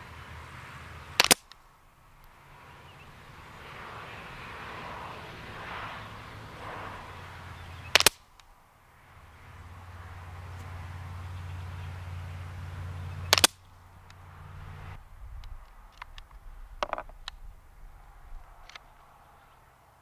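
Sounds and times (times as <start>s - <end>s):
suppressed rifle shots: 7.8s - 8.4s, 13.2s - 13.7s.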